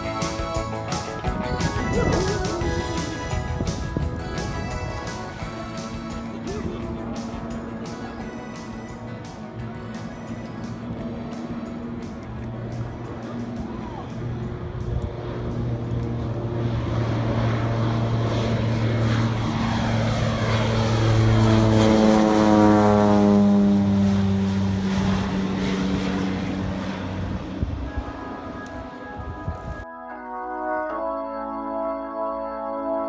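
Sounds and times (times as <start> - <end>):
floatplane engine flying past: 0.0 - 29.9.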